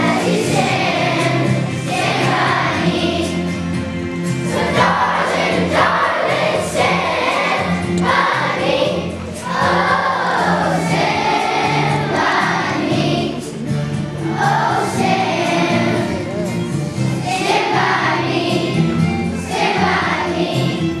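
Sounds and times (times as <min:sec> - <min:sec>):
children's choir singing: 0:00.0 - 0:21.0
instrumental accompaniment: 0:00.0 - 0:21.0.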